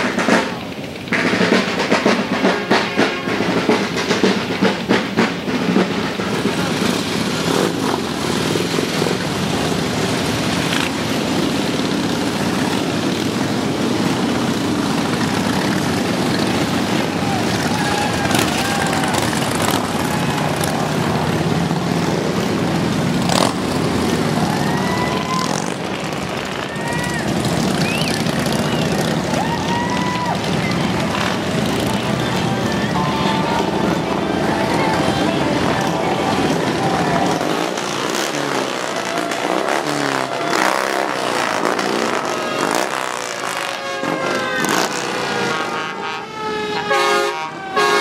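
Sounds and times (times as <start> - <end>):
crowd voices: 0.0 - 48.0
motorcycle engines rumbling: 0.0 - 48.0.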